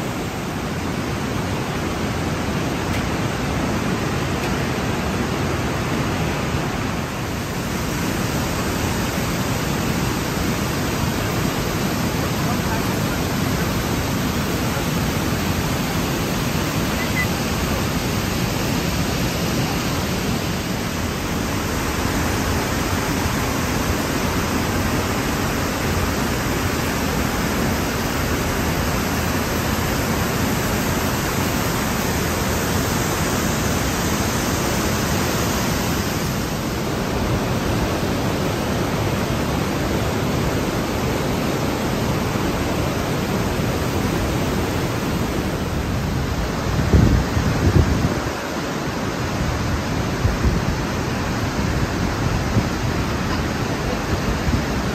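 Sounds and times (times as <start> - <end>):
water rushing through gorge: 0.0 - 54.9.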